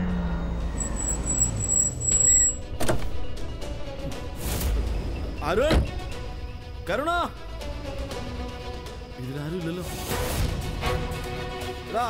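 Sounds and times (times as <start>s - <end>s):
car engine rumbling: 0.0s - 4.0s
dramatic background music: 2.5s - 12.0s.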